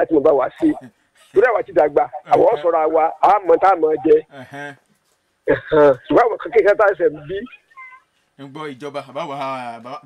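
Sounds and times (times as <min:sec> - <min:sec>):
person speaking: 0:00.0 - 0:04.8, 0:05.5 - 0:08.0.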